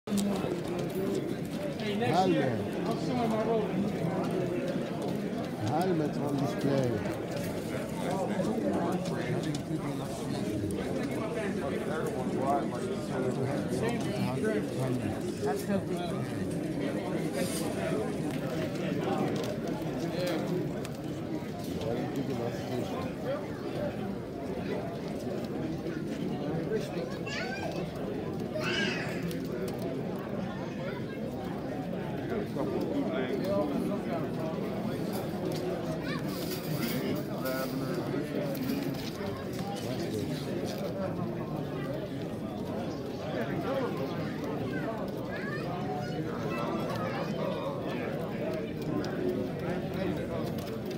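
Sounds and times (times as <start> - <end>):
murmur of voices: 0.0 - 50.9.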